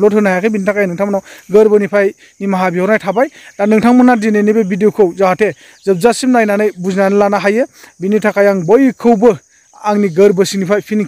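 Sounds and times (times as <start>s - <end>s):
high-pitched insect trill: 0.0s - 11.0s
man talking: 0.0s - 11.0s.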